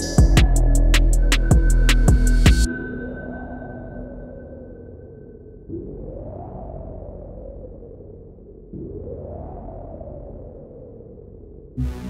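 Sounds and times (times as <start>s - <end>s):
low bass: 0.0s - 2.7s, 8.7s - 12.0s
dark trap beat: 0.0s - 3.1s.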